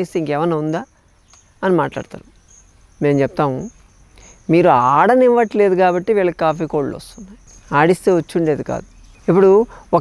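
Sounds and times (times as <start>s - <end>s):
insects chirping faintly: 0.0s - 10.0s.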